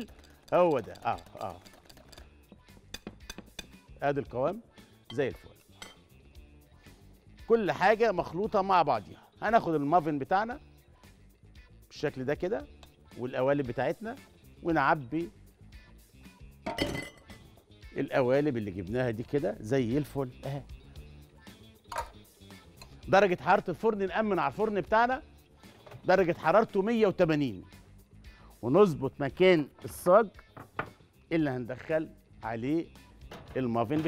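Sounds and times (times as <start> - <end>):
whisk beating batter in glass bowl: 0.0 - 2.2
faint background music: 0.0 - 34.0.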